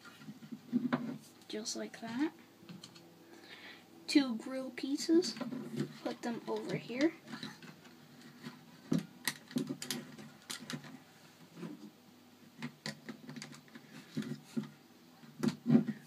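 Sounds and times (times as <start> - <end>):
plastic bricks clicking: 9.2 - 10.9, 12.6 - 14.3.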